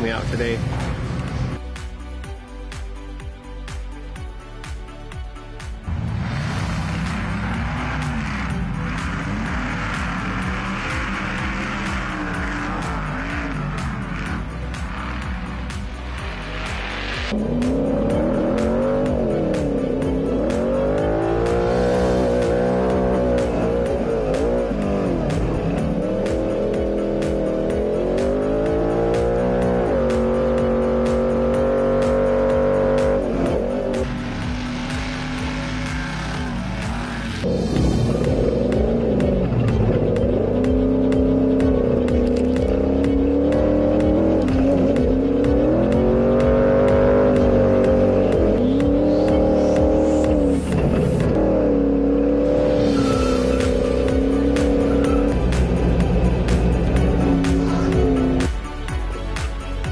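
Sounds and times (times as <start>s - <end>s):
race car engine revving: 5.9s - 58.5s.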